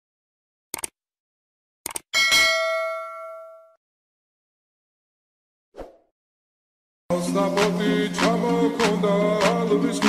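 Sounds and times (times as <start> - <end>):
quick clicks: 0.7 - 1.0, 1.8 - 2.1
bell ringing: 2.2 - 3.8.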